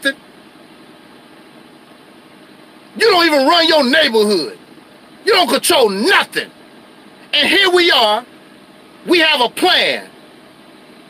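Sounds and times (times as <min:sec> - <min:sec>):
vehicle cab background noise: 0:00.0 - 0:11.0.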